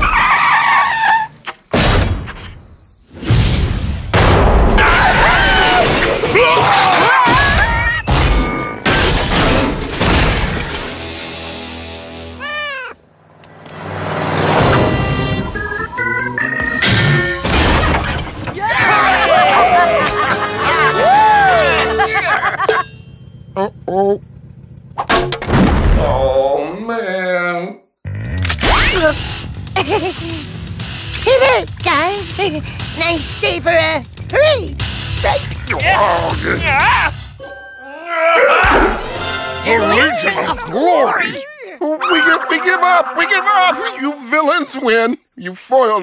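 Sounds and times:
car tyre squeal: 0:00.0 - 0:01.5
loud crash: 0:01.7 - 0:06.4, 0:16.8 - 0:18.7, 0:25.0 - 0:26.3
cartoon voices yelling and whooping: 0:04.8 - 0:08.1, 0:18.6 - 0:22.6, 0:35.8 - 0:37.2, 0:37.8 - 0:39.0, 0:39.7 - 0:45.0
vehicle running: 0:09.4 - 0:26.4, 0:28.1 - 0:37.4
short cries: 0:12.2 - 0:13.0.

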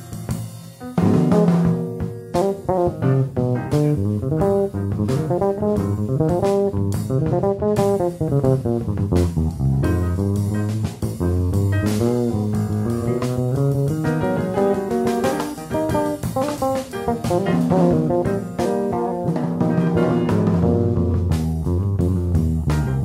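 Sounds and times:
drums: 0:00.0 - 0:23.0
electric bass jazz solo: 0:00.0 - 0:23.0.

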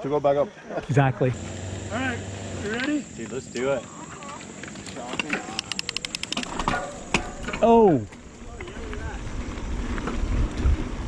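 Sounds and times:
bike freehub ratcheting clicks: 0:05.4 - 0:06.6.

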